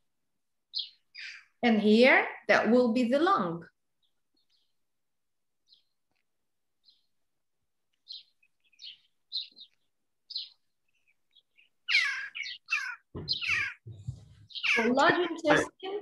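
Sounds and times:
birds chirping: 0:00.6 - 0:16.0.

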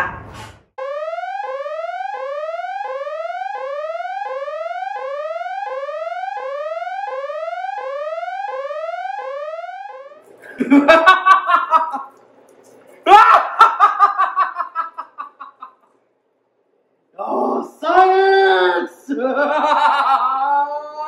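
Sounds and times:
electronic gliding tone: 0:00.8 - 0:10.3
person laughing: 0:10.4 - 0:12.1, 0:13.0 - 0:15.8, 0:19.1 - 0:21.0.

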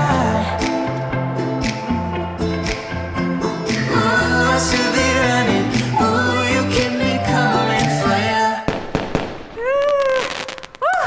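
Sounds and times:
music: 0:00.0 - 0:08.7
crackling firework burst: 0:08.7 - 0:10.9.

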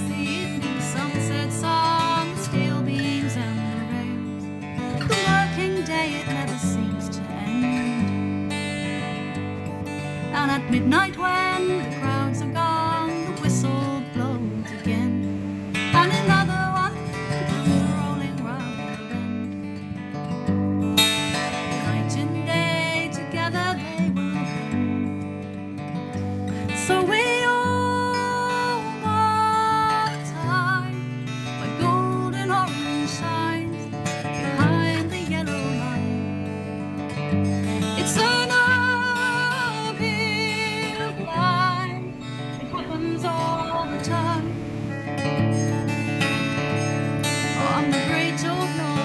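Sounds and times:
acoustic guitar strumming: 0:00.0 - 0:49.0.

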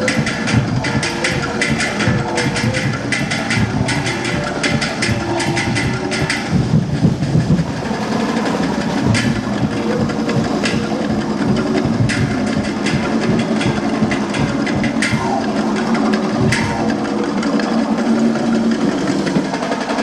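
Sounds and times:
drum and percussion ensemble: 0:00.0 - 0:20.0.

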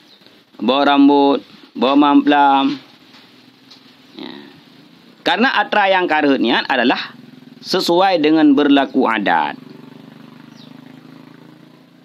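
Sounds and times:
fast-pulsing engine hum: 0:03.4 - 0:12.0
faint high chirp: 0:09.6 - 0:11.5.

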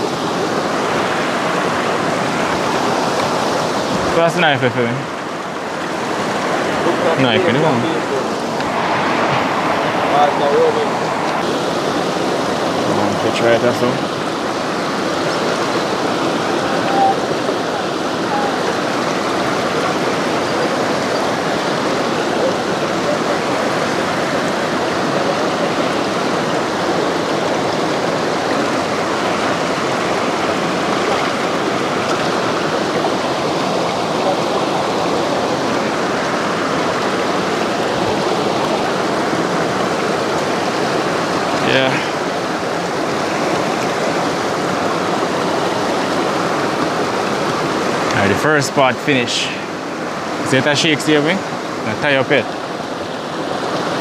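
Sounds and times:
water rushing over stones: 0:00.0 - 0:54.0.

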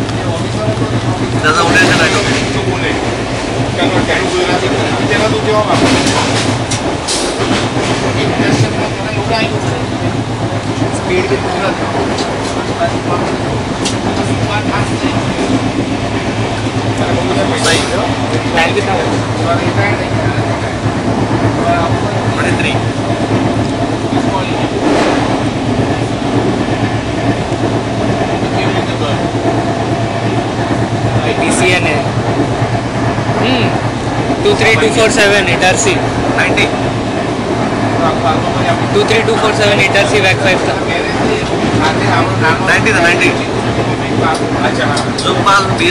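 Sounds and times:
train running rumble: 0:00.0 - 0:45.9
wheels clicking over rail joints: 0:00.0 - 0:45.9.

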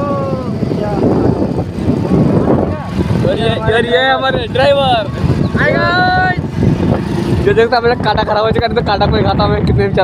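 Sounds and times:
motorcycle engine: 0:00.0 - 0:10.0
voices talking: 0:00.0 - 0:10.0
wind rumble: 0:00.0 - 0:10.0.

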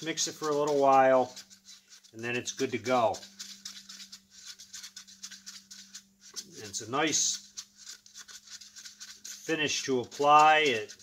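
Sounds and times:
stick scraping paper cup: 0:00.0 - 0:11.0.

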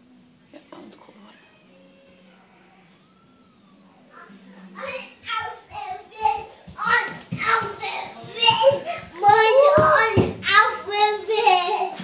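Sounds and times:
children chattering: 0:03.3 - 0:12.0.

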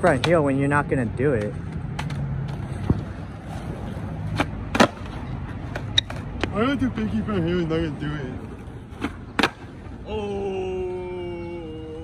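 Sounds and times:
skateboard clacking on ground: 0:00.0 - 0:07.3, 0:08.4 - 0:10.0
skateboard rolling on asphalt: 0:00.0 - 0:10.0.

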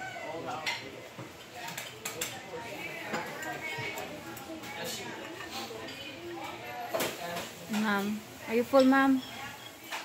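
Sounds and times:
indistinct chatter of customers: 0:00.0 - 0:10.0
clinks of dishes and cutlery: 0:00.5 - 0:02.4, 0:03.0 - 0:10.0.

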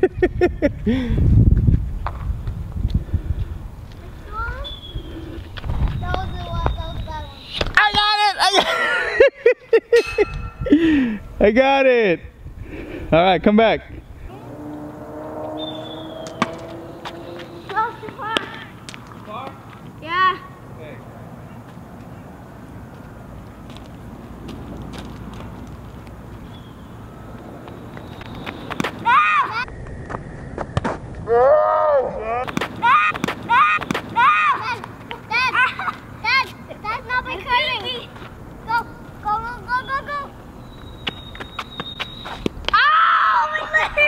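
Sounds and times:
outdoor background noise: 0:00.0 - 0:44.0
distant children shouting: 0:14.2 - 0:18.8, 0:29.0 - 0:29.8, 0:32.8 - 0:35.9.

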